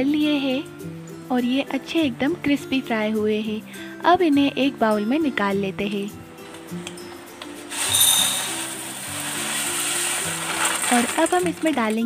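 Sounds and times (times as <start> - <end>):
soft background music: 0.0 - 12.0
fried beans rattling into a bowl: 7.6 - 12.0.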